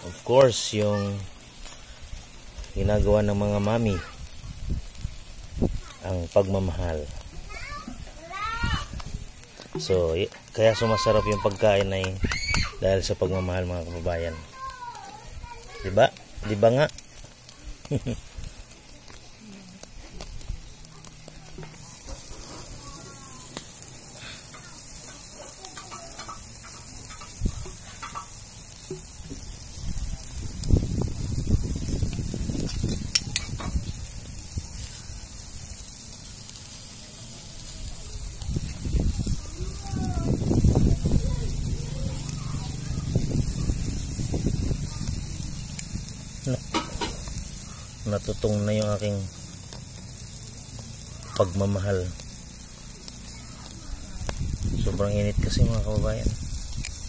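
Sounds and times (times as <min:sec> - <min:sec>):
chicken sizzling on a grill: 0:00.0 - 0:57.0.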